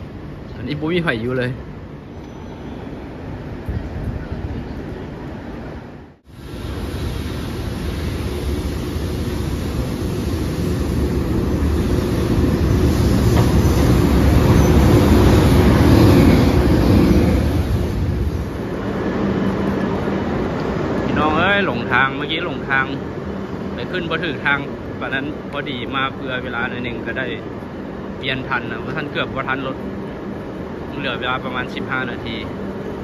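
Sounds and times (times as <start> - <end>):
electric locomotive rumbling: 0.0 - 33.0.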